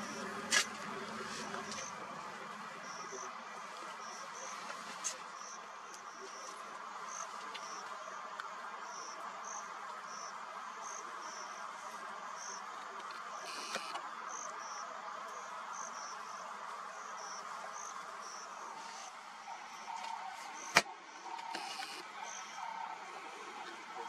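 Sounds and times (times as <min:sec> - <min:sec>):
insects chirping: 0:00.0 - 0:24.0.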